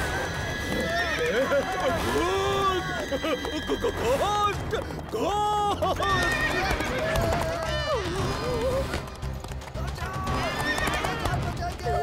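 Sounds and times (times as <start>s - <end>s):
horse neighing: 0.0s - 4.4s
dramatic background music: 0.0s - 12.0s
hooves clip-clopping: 0.0s - 12.0s.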